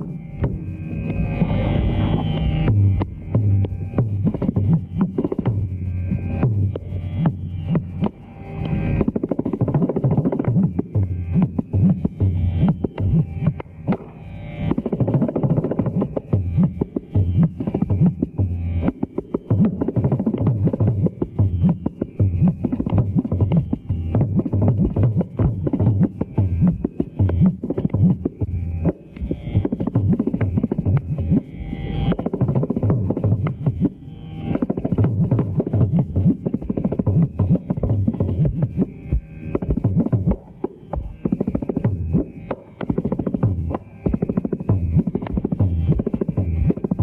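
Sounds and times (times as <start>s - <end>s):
hand drum strokes: 0.0s - 47.0s.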